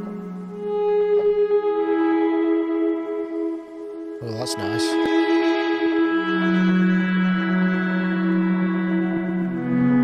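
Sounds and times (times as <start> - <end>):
synthesizer playing sustained notes: 0.0 - 10.0.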